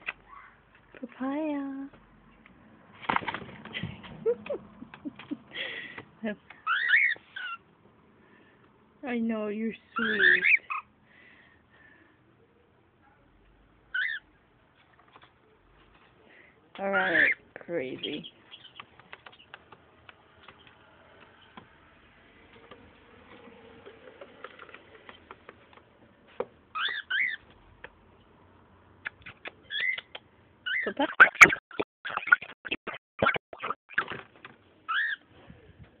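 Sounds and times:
cockatiel chirp: 6.6s - 7.6s, 26.7s - 27.4s, 29.7s - 33.8s, 34.9s - 35.2s.

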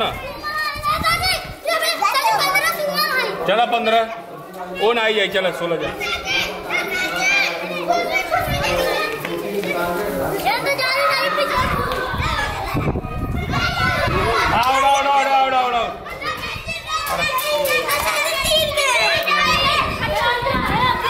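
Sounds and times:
children shouting: 0.0s - 5.0s, 5.6s - 21.0s.

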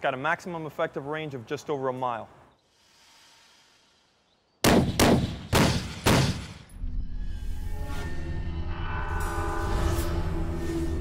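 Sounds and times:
loud gunshots with echo: 4.6s - 6.6s.

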